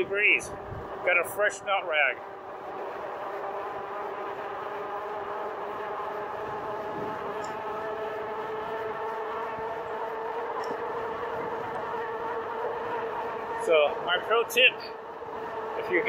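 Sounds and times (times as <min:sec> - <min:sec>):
electric bike motor whine: 0:00.0 - 0:16.0.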